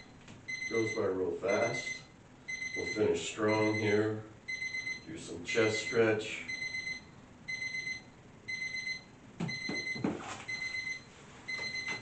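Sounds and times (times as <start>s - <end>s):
electronic timer alarm beeping: 0.0s - 12.0s.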